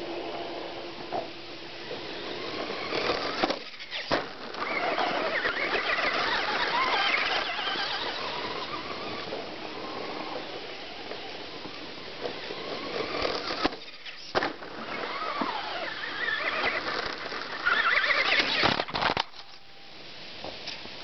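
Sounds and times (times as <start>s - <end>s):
electric motor whining: 1.8s - 18.9s.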